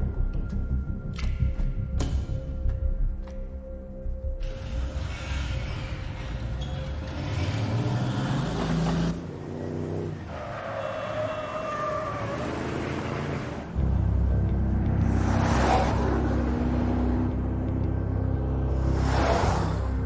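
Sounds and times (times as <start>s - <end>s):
traffic noise: 4.4s - 20.0s.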